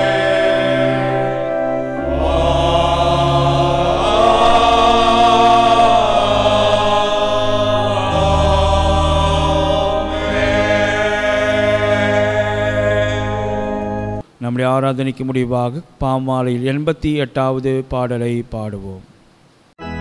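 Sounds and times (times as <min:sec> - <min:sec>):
choir singing chant-like chords: 0:00.0 - 0:14.2
low steady accompaniment: 0:00.0 - 0:14.2.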